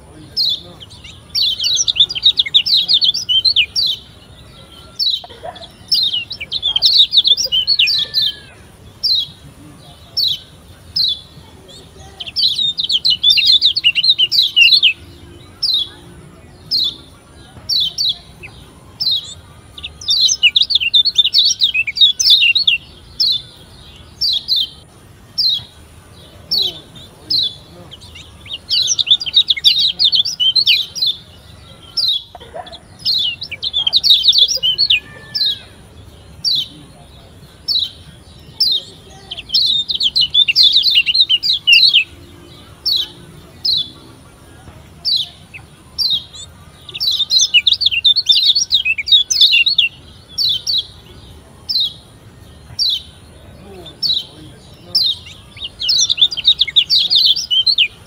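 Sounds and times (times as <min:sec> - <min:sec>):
bird chirping and twittering: 0:00.0 - 0:58.0.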